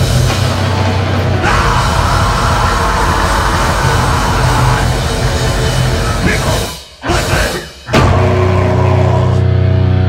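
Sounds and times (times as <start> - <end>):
drum hit: 1.6 - 8.8.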